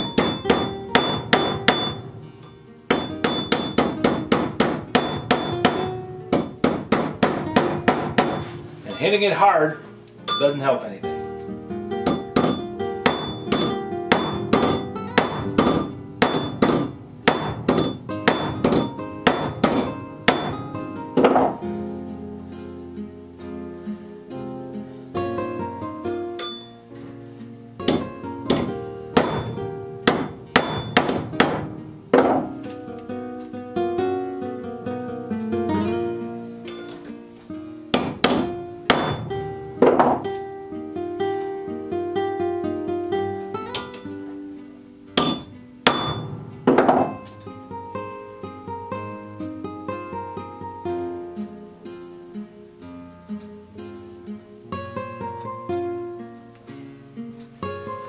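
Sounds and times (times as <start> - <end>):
hammer tapping on metal: 0.0 - 2.2, 2.9 - 9.1, 12.0 - 21.6, 27.8 - 32.8, 37.9 - 40.4, 45.2 - 47.4
acoustic guitar music: 0.0 - 58.0.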